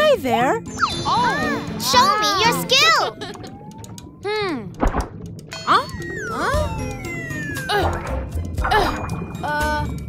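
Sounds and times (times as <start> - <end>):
light children's music: 5.5 - 10.0.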